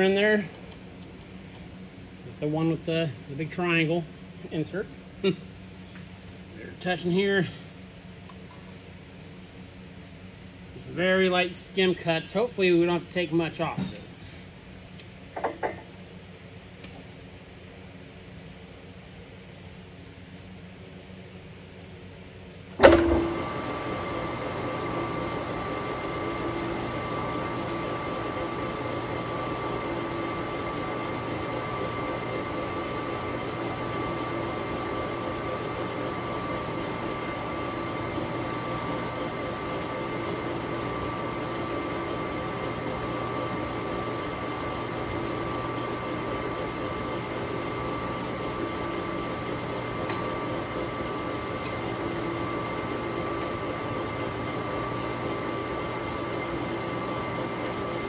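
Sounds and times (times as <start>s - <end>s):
metal lathe running with whine: 0.0s - 0.5s, 22.8s - 58.0s.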